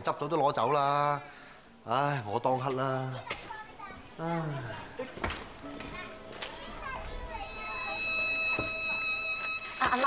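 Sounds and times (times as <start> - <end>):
wordless voices: 0.0 - 8.3
sitcom background music: 4.1 - 10.0.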